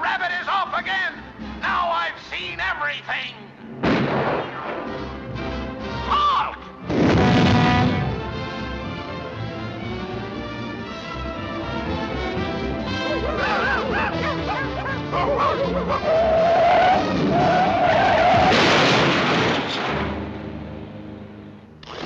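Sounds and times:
loud crash sound effects: 0:03.8 - 0:05.0, 0:06.9 - 0:08.0, 0:18.3 - 0:20.3
orchestral cartoon music: 0:04.7 - 0:18.5.

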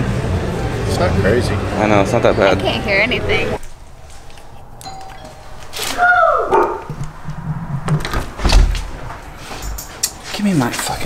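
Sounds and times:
faint doorbell chime: 0:04.8 - 0:05.8
loud falling vocal cry: 0:05.8 - 0:06.9
heavy thuds of door opening: 0:06.9 - 0:09.2.

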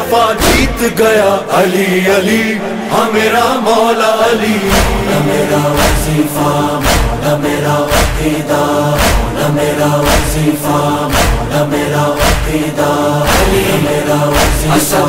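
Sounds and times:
men chanting: 0:00.0 - 0:15.0
heavy percussive beat: 0:00.4 - 0:01.0, 0:04.6 - 0:15.0.

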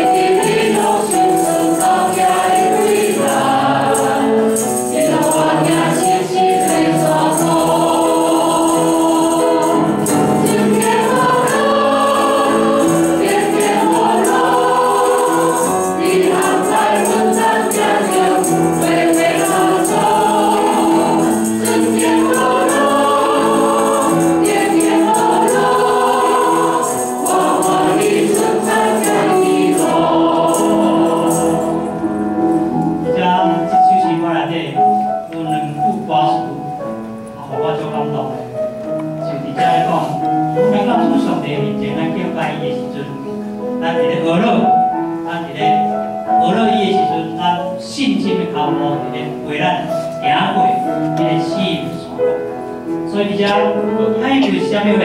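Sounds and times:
group singing a hymn: 0:00.0 - 0:33.0
piano accompaniment: 0:00.0 - 0:55.0.

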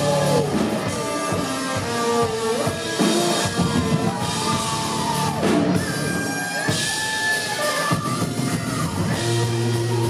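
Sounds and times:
rock band playing loud: 0:00.0 - 0:10.0.

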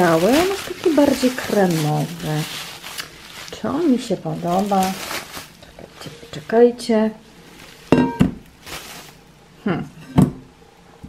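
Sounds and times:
bubble wrap rustling: 0:00.0 - 0:09.4.

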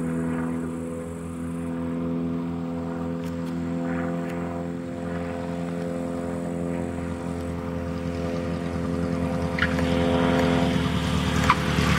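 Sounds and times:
propeller airplane engine drone: 0:00.0 - 0:11.9.

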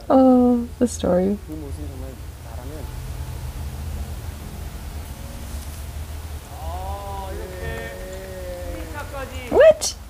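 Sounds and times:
steady low hum: 0:00.0 - 0:09.4
faint hiss: 0:00.0 - 0:10.0
faint voices: 0:06.4 - 0:10.0.

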